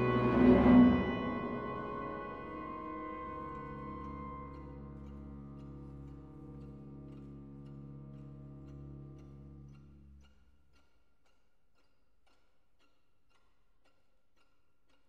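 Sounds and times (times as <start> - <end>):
orchestra playing sustained chords: 0.0 - 9.7.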